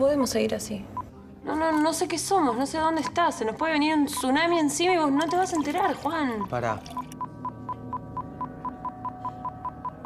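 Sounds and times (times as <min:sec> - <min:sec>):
short electronic beeps: 0:05.2 - 0:10.0.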